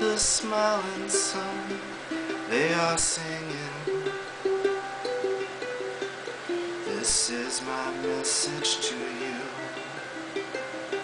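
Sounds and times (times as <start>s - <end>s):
ukulele plucked notes: 0.0s - 11.0s.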